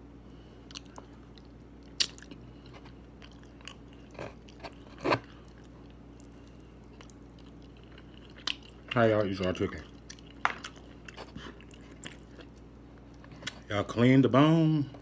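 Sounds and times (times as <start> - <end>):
person chewing: 0.6 - 13.7.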